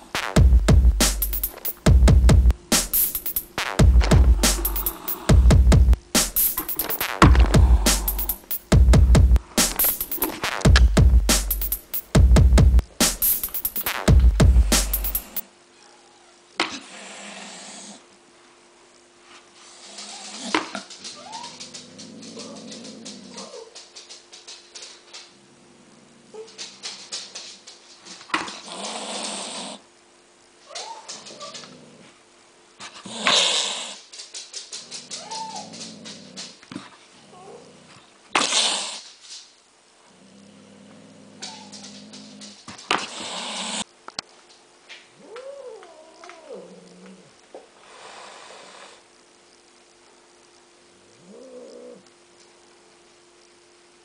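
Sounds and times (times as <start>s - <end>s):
sharp clicks: 1.0s - 1.9s, 2.5s - 8.8s, 9.4s - 15.4s
cat growling low: 7.3s - 8.4s, 15.8s - 18.1s, 19.7s - 23.8s, 30.8s - 32.2s, 32.8s - 34.0s, 34.8s - 39.0s, 40.1s - 43.9s, 45.2s - 49.0s, 51.1s - 52.1s.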